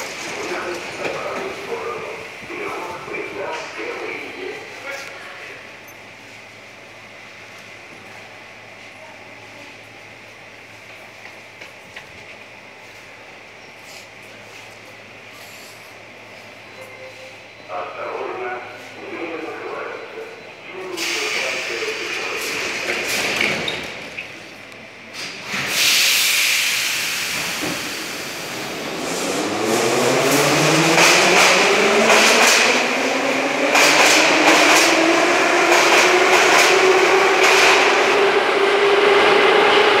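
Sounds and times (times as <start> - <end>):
metro train knock: 30.8 - 32.9, 33.6 - 38.2.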